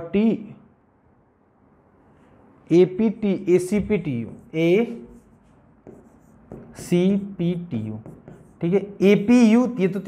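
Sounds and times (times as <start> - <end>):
man's voice: 2.7 - 5.1, 6.8 - 10.0
writing scratching on a board: 3.7 - 9.3.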